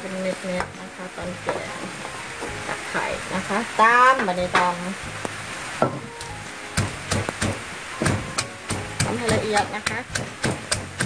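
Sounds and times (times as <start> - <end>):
wooden pestle pounding in mortar: 5.8 - 11.0.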